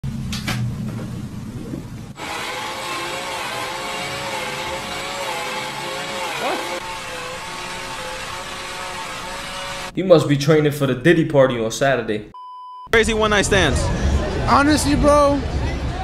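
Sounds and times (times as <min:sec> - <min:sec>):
cordless drill whining: 0:02.2 - 0:09.9.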